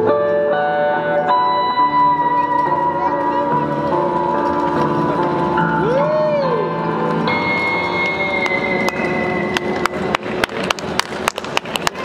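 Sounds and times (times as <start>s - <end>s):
electric guitar chord ringing: 0.0s - 10.4s
hand claps: 8.0s - 12.0s.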